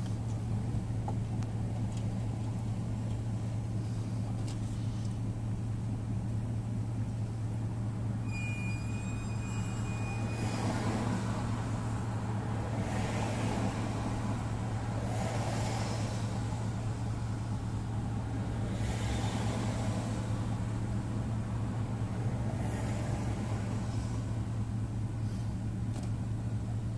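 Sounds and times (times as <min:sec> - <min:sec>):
car idling hum: 0:00.0 - 0:26.9
passing vehicles: 0:00.0 - 0:26.9
thin high whine: 0:08.2 - 0:12.4.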